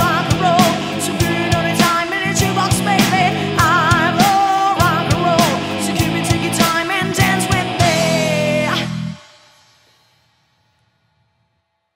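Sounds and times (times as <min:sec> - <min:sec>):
rock band final hit: 0:00.0 - 0:09.4
cymbals and guitar ringing: 0:00.0 - 0:10.4.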